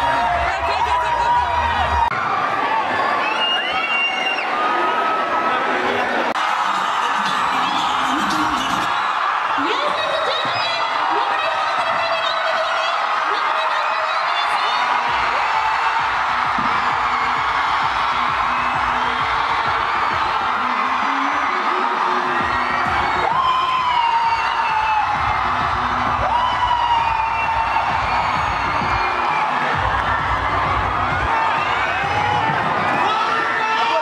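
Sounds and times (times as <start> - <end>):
crowd cheering and whooping: 0.0 - 34.0
dance music with steady beat: 6.4 - 12.5, 14.5 - 33.0.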